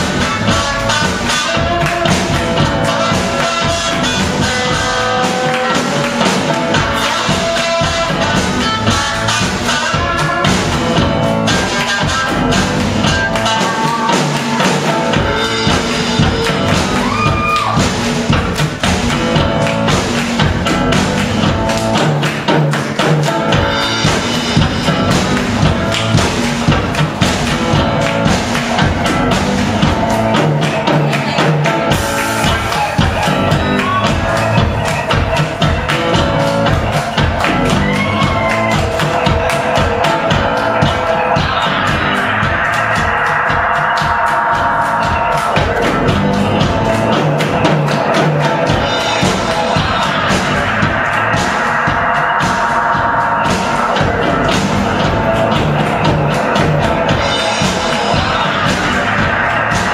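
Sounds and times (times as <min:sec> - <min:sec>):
bass line: 0:00.0 - 0:59.9
electric guitar playing: 0:00.0 - 0:59.9
steady drum beat: 0:00.0 - 0:59.9.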